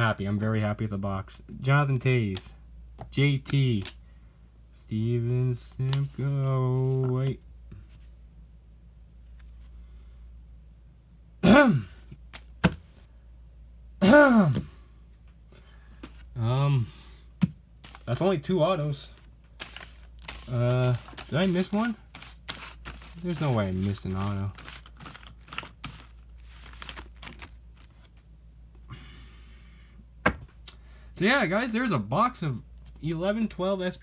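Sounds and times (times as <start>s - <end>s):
faint low room hum: 0.0s - 34.0s
card wrappers crinkling: 3.2s - 4.0s, 17.8s - 18.3s, 19.1s - 28.2s
man clearing his throat: 11.4s - 12.1s, 14.0s - 14.8s.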